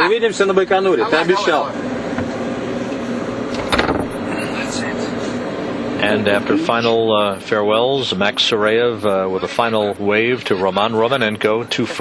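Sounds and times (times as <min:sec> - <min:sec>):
ventilation hum and hiss: 0:00.0 - 0:12.0.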